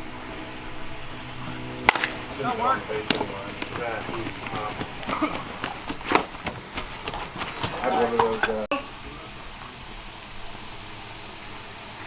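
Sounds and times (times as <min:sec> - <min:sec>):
steady low hum: 0:00.0 - 0:12.0
bat cracking baseball: 0:01.8 - 0:08.4.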